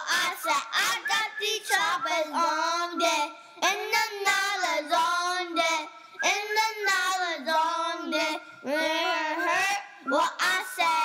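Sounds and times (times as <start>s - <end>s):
child singing: 0.0s - 11.0s.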